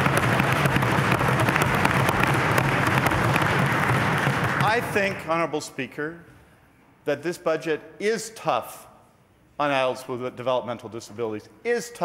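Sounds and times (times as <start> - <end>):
desk-thumping and clapping: 0.0 - 5.3.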